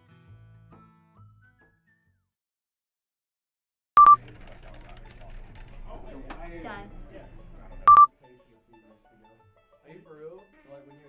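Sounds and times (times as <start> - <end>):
short electronic beep: 7.9 - 8.1.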